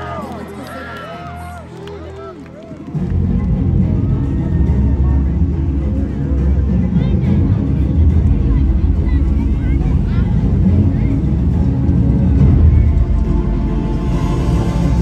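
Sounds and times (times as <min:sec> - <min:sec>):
faint scattered voices: 0:00.0 - 0:15.0
dramatic soundtrack over sound system: 0:02.4 - 0:15.0
deep low rumble: 0:03.0 - 0:15.0.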